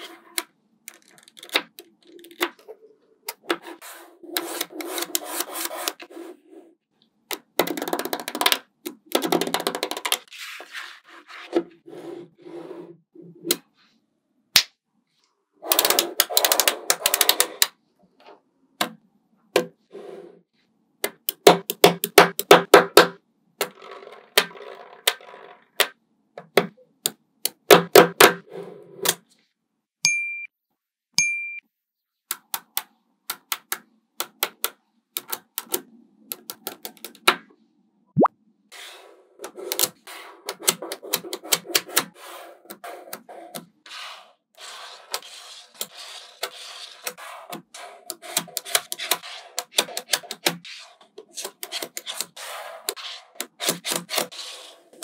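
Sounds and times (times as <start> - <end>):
magnetic balls rattling and rubbing: 23.7 - 25.9.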